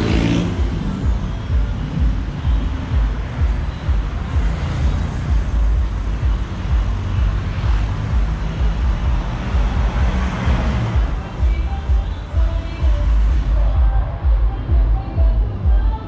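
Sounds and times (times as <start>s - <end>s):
road traffic noise: 0.0s - 16.0s.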